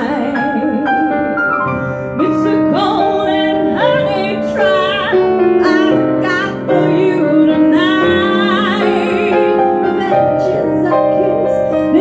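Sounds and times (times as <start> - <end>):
woman singing operatic notes: 0.0 - 1.6, 2.2 - 12.0
grand piano accompaniment: 0.0 - 12.0.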